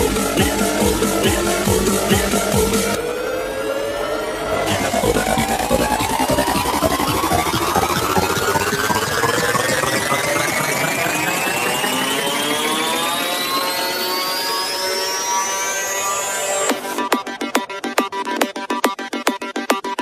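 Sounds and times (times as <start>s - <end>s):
synth riser: 0.0s - 18.3s
electronic dance music: 0.0s - 20.0s.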